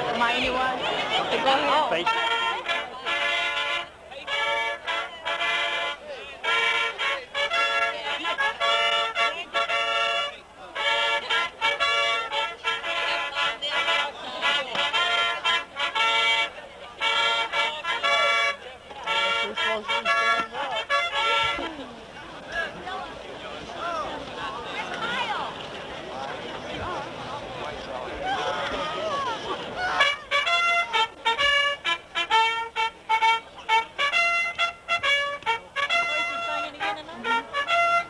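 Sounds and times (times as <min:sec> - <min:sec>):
faint voices: 0:00.0 - 0:38.0
punchy brass chords: 0:01.6 - 0:21.8, 0:30.0 - 0:38.0.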